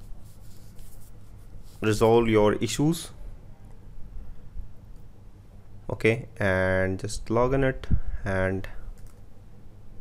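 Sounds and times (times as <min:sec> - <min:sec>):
man speaking: 0:01.8 - 0:03.2, 0:05.9 - 0:08.8.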